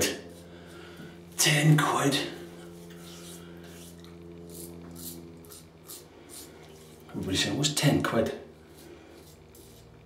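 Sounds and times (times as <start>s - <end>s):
razor scraping over stubble: 0.0s - 10.0s
steady low hum: 0.0s - 10.0s.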